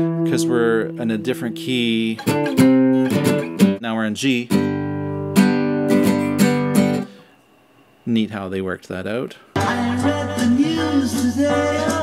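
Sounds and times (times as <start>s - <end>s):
acoustic guitar strummed: 0.0s - 3.8s, 4.5s - 7.3s, 9.6s - 12.0s.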